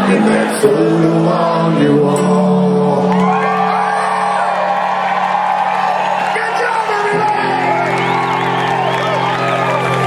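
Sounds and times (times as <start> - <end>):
live rock band playing: 2.3 - 10.0
crowd whooping and shouting: 3.0 - 10.0.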